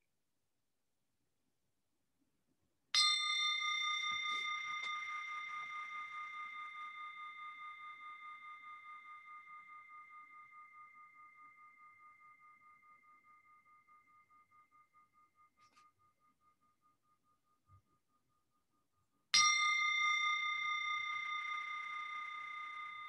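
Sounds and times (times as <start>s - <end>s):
meditation bell ringing: 3.0s - 17.1s, 19.4s - 23.0s.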